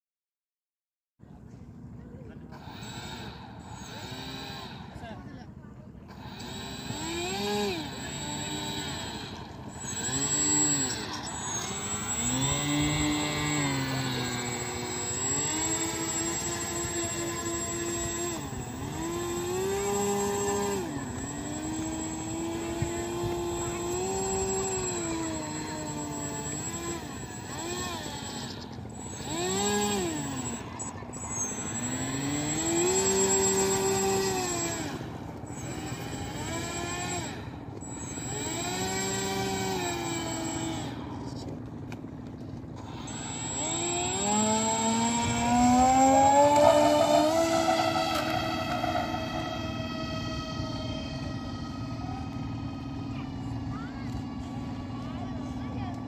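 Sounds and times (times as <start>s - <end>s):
electric motor whining: 2.5s - 56.0s.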